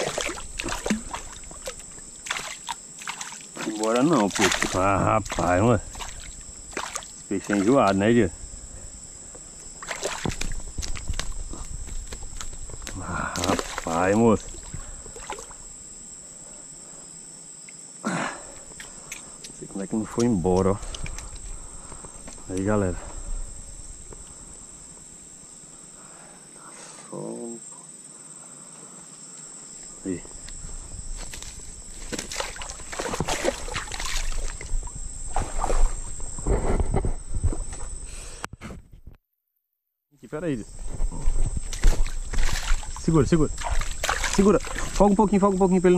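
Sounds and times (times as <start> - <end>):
insect trill: 0.0 - 38.5, 40.2 - 45.9.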